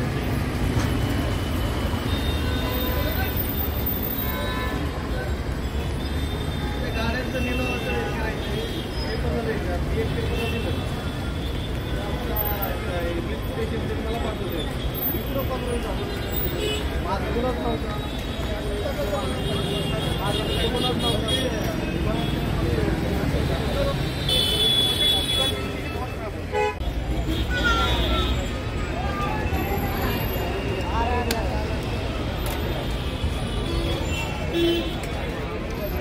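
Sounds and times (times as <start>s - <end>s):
car and bus engines rumbling: 0.0s - 36.0s
people talking nearby: 1.8s - 36.0s.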